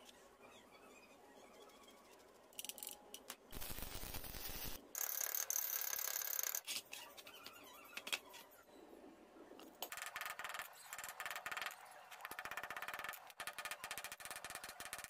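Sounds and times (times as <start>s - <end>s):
metal parts grinding and squeaking: 5.0s - 8.7s.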